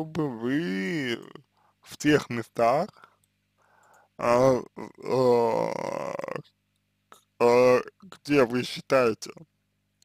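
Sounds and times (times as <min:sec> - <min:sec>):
man's drawn-out hesitation sound: 0:00.0 - 0:03.0, 0:04.2 - 0:06.5, 0:07.3 - 0:09.4.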